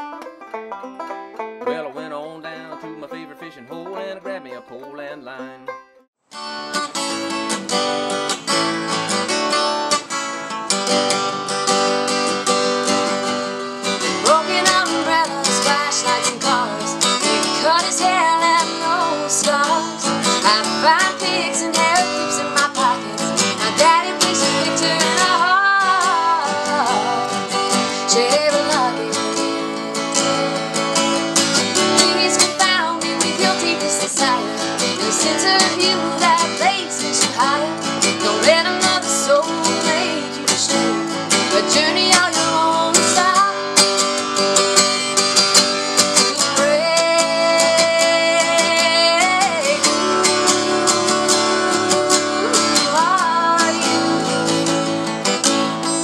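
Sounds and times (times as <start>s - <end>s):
acoustic guitar strumming: 0.0s - 56.0s.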